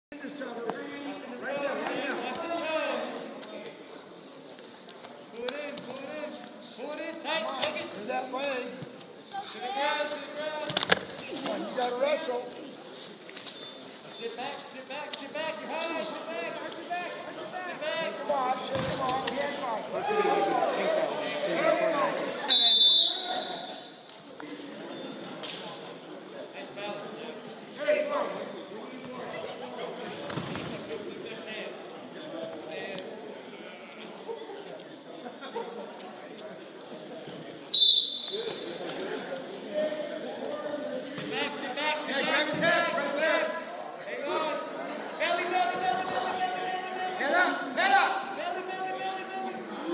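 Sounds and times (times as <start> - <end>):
referee whistle: 22.5 - 24.0, 37.7 - 38.7.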